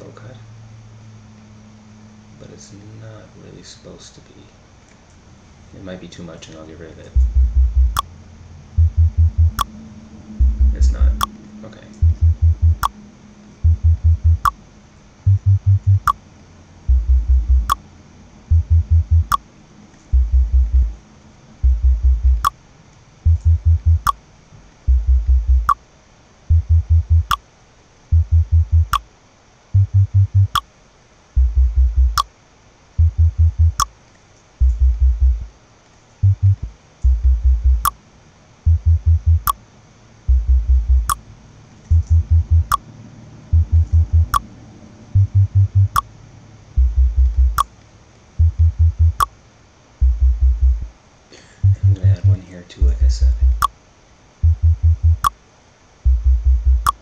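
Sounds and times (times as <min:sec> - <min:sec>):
pulsing electronic bass notes: 0:07.2 - 0:08.1, 0:08.8 - 0:09.7, 0:10.4 - 0:11.3, 0:12.0 - 0:13.0, 0:13.6 - 0:14.6, 0:15.3 - 0:16.2, 0:16.9 - 0:17.8, 0:18.5 - 0:19.4, 0:20.1 - 0:21.0, 0:21.6 - 0:22.5, 0:23.3 - 0:24.2, 0:24.9 - 0:25.8, 0:26.5 - 0:27.4, 0:28.1 - 0:29.0, 0:29.8 - 0:30.6, 0:31.4 - 0:32.2, 0:33.0 - 0:33.8, 0:34.6 - 0:35.5, 0:36.2 - 0:37.9, 0:38.7 - 0:39.6, 0:40.3 - 0:41.2, 0:41.9 - 0:42.8, 0:43.4 - 0:44.5, 0:45.1 - 0:46.1, 0:46.8 - 0:47.7, 0:48.4 - 0:49.3, 0:50.0 - 0:50.9, 0:51.6 - 0:53.7, 0:54.4 - 0:55.3, 0:56.1 - 0:57.0.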